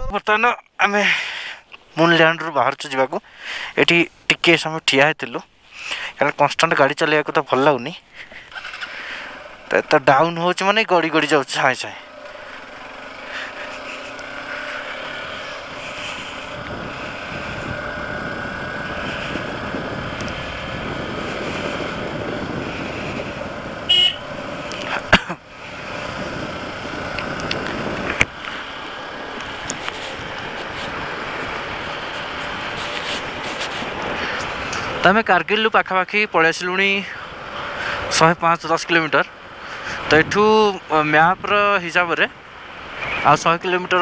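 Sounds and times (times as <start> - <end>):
wind and road noise: 0.0 - 44.0
motorcycle running: 8.2 - 35.2
horn toot: 23.8 - 24.4.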